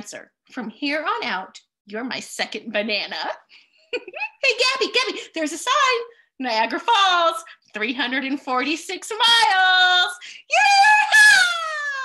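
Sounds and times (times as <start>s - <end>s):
woman yelling joyfully: 9.3s - 12.0s.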